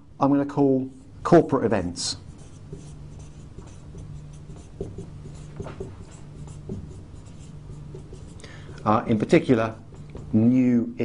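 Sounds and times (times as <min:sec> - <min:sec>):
low steady hum: 0:00.0 - 0:11.0
marker writing on whiteboard: 0:02.2 - 0:10.4.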